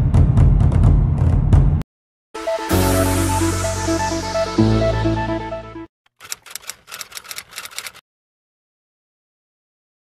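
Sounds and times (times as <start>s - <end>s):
rapid sharp clicks: 6.1s - 8.0s.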